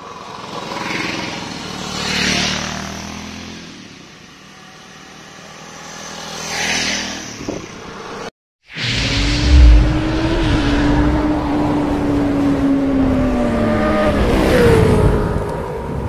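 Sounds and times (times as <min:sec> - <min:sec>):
motorcycles passing: 0:00.0 - 0:08.3, 0:09.1 - 0:14.9.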